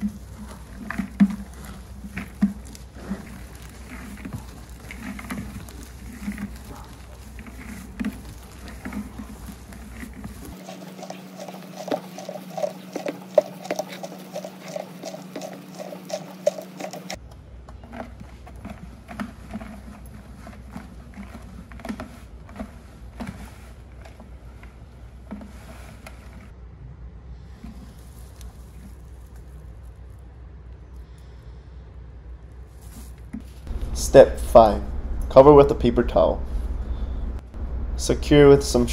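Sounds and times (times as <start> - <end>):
leaves rustling and crackling: 0.0 - 17.2, 27.5 - 30.3, 32.5 - 34.0
steady hum: 33.7 - 38.9.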